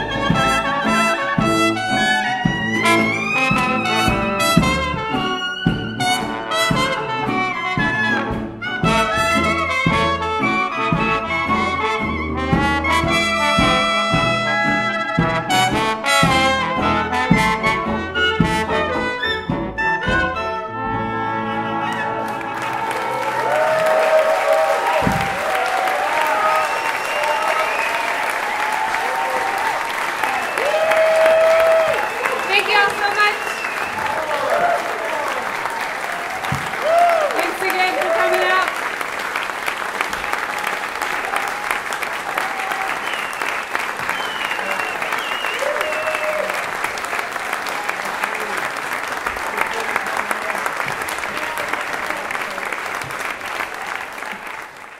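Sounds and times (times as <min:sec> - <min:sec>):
audience applauding: 0:00.0 - 0:06.4, 0:21.6 - 0:54.9
crowd cheering and whooping: 0:21.6 - 0:38.6, 0:40.1 - 0:48.5.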